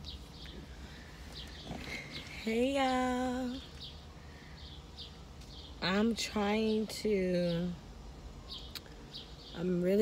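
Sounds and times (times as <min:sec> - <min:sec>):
bird chirping: 0:00.0 - 0:10.0
low steady rumble: 0:00.0 - 0:10.0.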